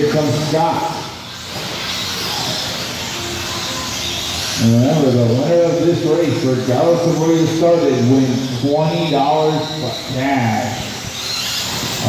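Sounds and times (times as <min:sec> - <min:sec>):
rc trucks electric motor hiss: 0:00.0 - 0:12.0.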